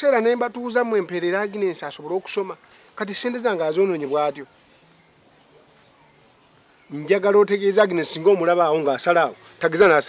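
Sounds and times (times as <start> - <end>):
insects trilling: 0.2 - 10.0.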